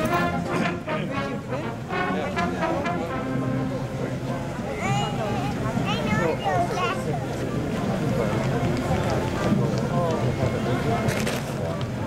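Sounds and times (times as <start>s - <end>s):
parade crowd noise: 0.0s - 12.0s
people talking: 0.0s - 12.0s.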